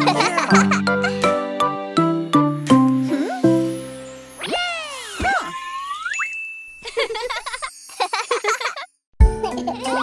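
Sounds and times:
jingling tinkling tones: 3.6s - 9.0s.

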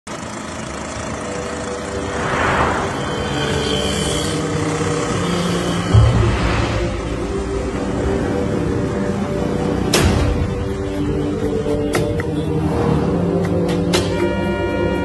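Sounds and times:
motor scooter engine: 0.1s - 2.1s
passing vehicles: 0.1s - 15.0s
background music: 0.6s - 15.0s.

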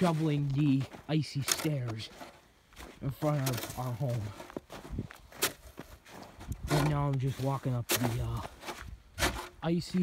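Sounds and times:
person speaking: 0.0s - 4.6s, 6.6s - 8.7s, 9.4s - 10.0s
footsteps on packed snow and ice: 0.0s - 10.0s.

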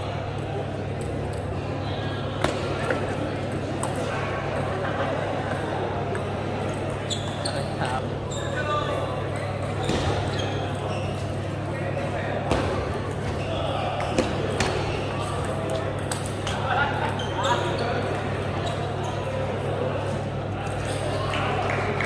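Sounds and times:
chatter of busy hall: 0.0s - 22.0s.

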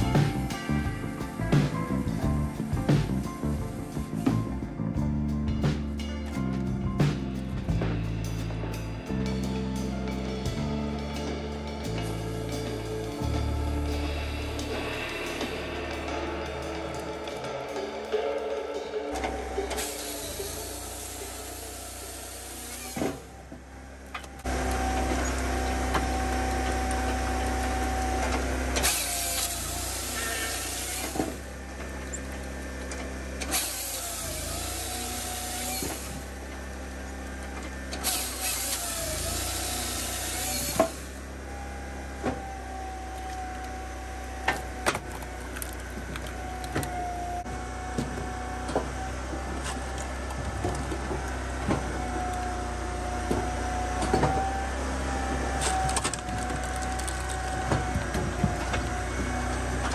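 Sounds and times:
engine drone with hydraulic tone: 0.0s - 59.9s.

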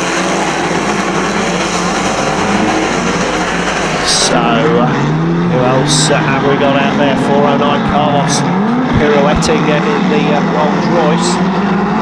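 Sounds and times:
car engines running together: 0.0s - 12.0s.

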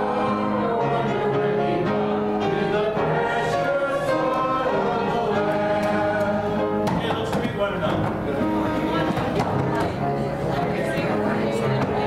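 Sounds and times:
congregation singing a hymn: 0.0s - 12.0s
instrumental accompaniment: 0.0s - 12.0s
many people talking: 0.0s - 12.0s.

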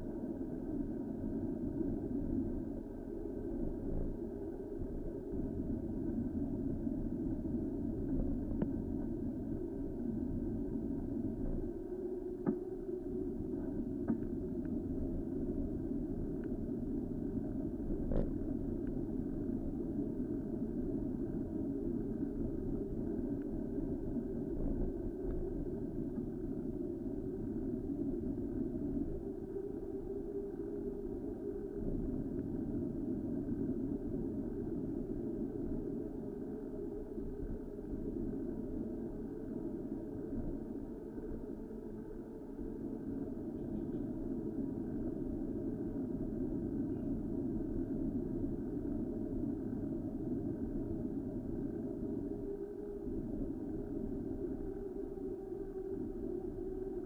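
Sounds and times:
muffled wind rumble: 0.0s - 57.0s.

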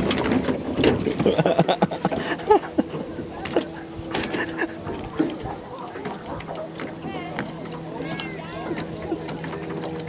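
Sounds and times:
boat motor humming: 0.0s - 10.0s
water slapping against hull: 0.0s - 10.0s
distant high-pitched voices: 5.0s - 10.0s.

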